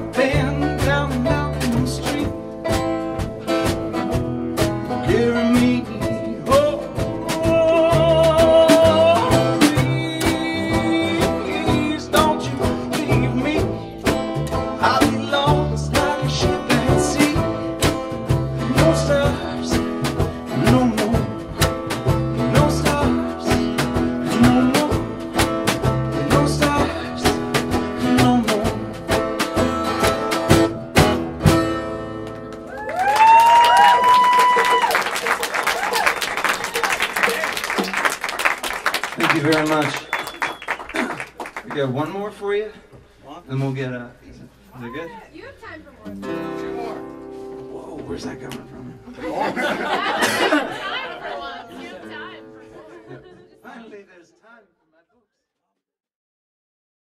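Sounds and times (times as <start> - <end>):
folk band playing: 0.0 - 43.8, 44.5 - 53.9
audience cheering and applauding: 32.2 - 41.8.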